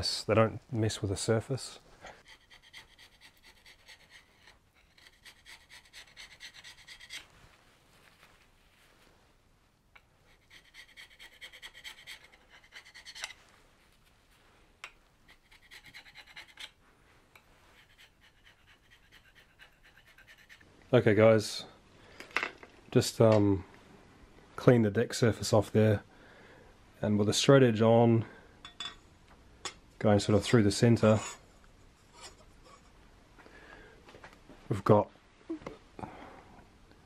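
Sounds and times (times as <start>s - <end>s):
chisel scraping metal: 2.2s - 7.3s, 10.0s - 13.4s, 14.8s - 20.6s.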